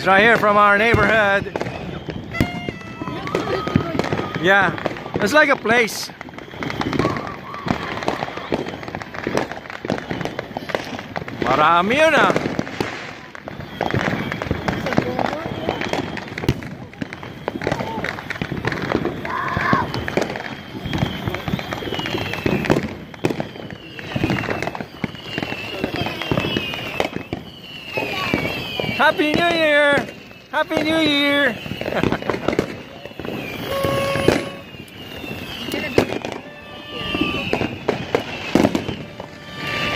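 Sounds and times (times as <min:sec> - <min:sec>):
voices in background: 0:00.0 - 0:09.4, 0:10.2 - 0:22.6, 0:23.7 - 0:39.9
fireworks popping and crackling: 0:00.0 - 0:39.9
high whistle sliding downward: 0:00.3 - 0:39.9.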